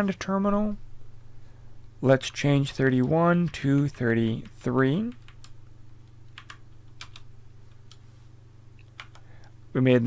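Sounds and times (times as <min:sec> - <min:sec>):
faint low hum: 0:00.0 - 0:10.0
keyboard key presses: 0:06.3 - 0:07.2, 0:08.8 - 0:09.3.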